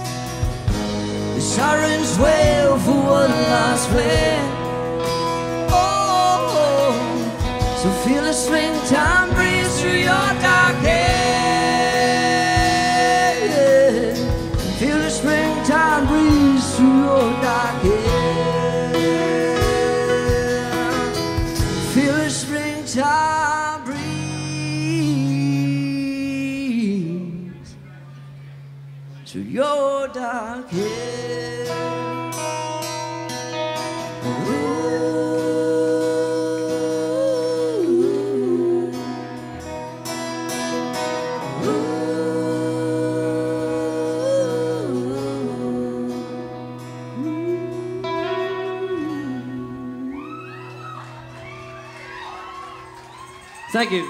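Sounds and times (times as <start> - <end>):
guitar: 0.0 - 54.0
person singing long notes: 1.3 - 27.7, 34.2 - 39.8, 41.0 - 51.2.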